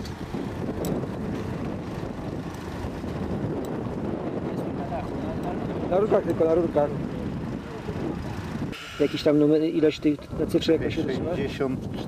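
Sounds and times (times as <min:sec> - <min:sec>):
wind buffeting microphone: 0:00.0 - 0:12.0
man talking: 0:08.9 - 0:11.9.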